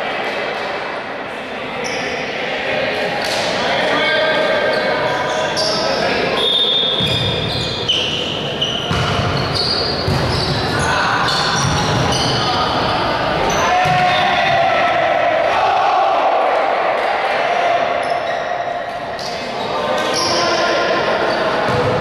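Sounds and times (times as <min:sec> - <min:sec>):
voices in a sports hall: 0:00.0 - 0:22.0
volleyball hits and bounces: 0:08.8 - 0:10.8, 0:13.7 - 0:14.7.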